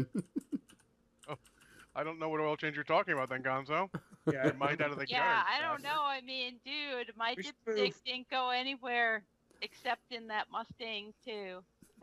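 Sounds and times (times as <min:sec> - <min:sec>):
faint voice: 0:00.0 - 0:00.6, 0:02.0 - 0:06.1, 0:07.2 - 0:08.1.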